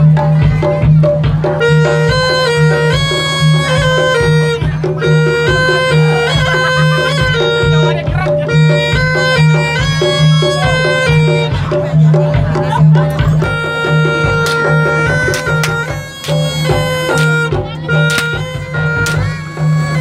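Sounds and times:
shawm playing piercing melody: 0.0s - 20.0s
steady drum beat: 0.0s - 20.0s.

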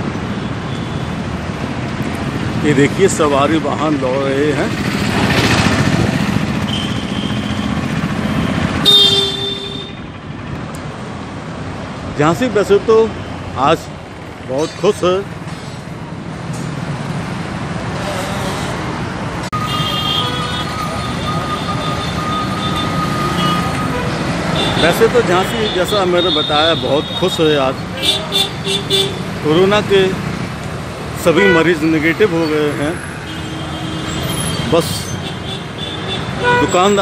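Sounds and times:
motorcycle engines passing: 0.0s - 37.0s
road noise rumble: 0.0s - 37.0s
street traffic: 0.0s - 37.0s.

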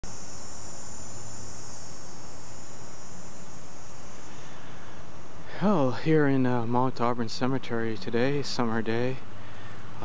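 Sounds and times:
insects singing: 0.0s - 10.0s
low constant rumble: 0.0s - 10.0s.

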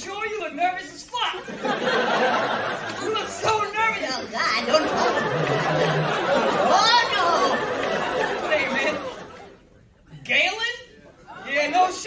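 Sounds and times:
crowd chatter: 1.6s - 10.2s.

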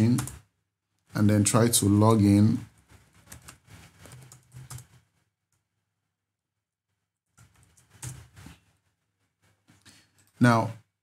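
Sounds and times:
computer keyboard typing: 0.0s - 0.5s, 2.8s - 5.0s, 7.4s - 8.4s.

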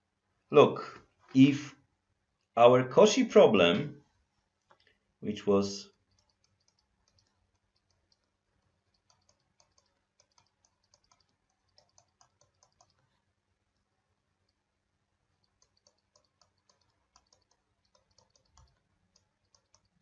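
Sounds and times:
stylus tapping on tablet screen: 6.0s - 13.1s, 15.4s - 20.0s.

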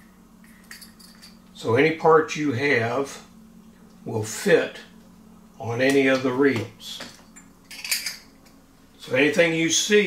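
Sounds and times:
metal reel parts clinking: 0.4s - 1.4s, 7.1s - 8.2s.

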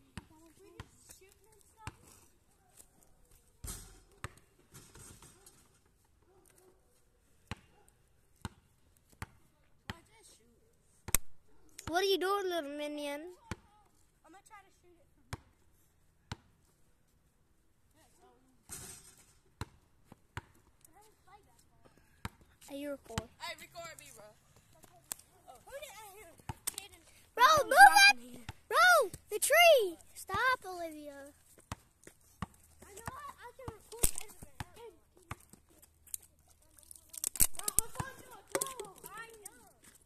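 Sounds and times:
basketball bouncing on asphalt: 0.0s - 2.0s, 3.6s - 5.6s, 7.4s - 7.8s, 8.4s - 10.2s, 13.3s - 13.8s, 15.3s - 15.6s, 16.2s - 16.6s, 18.7s - 20.8s, 22.0s - 23.7s, 26.2s - 26.7s, 30.2s - 30.7s, 31.5s - 35.7s, 37.8s - 39.5s
faint children's voices: 24.6s - 31.4s
child calling: 27.4s - 31.2s.

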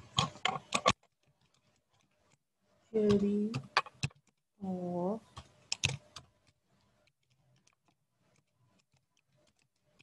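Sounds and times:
computer keyboard typing: 3.0s - 4.5s, 5.2s - 10.0s.

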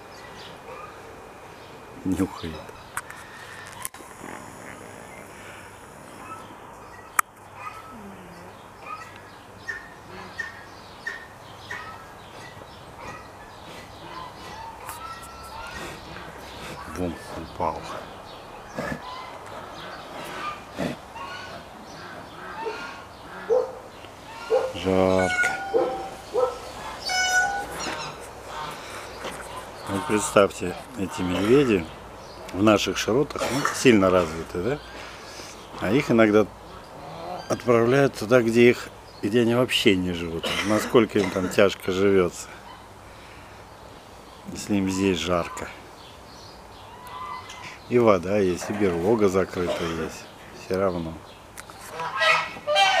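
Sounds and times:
geese honking: 8.8s - 18.1s, 19.0s - 32.0s, 46.9s - 47.8s, 51.8s - 53.0s
high-pitched animal call: 24.3s - 30.4s, 52.0s - 53.0s.

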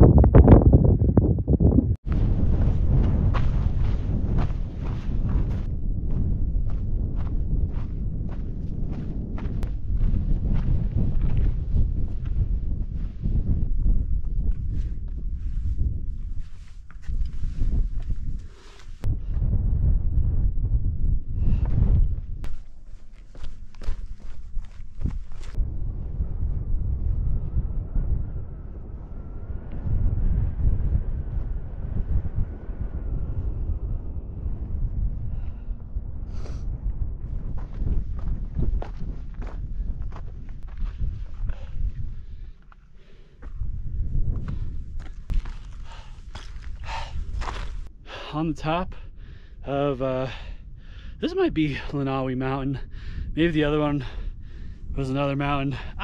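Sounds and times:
wind rumble on microphone: 0.0s - 56.0s
footsteps crunching on gravel: 22.4s - 25.6s, 44.4s - 47.9s.

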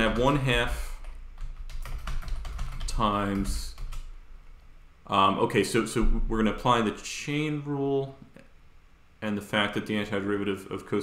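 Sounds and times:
typing on computer keyboard: 1.0s - 4.1s.

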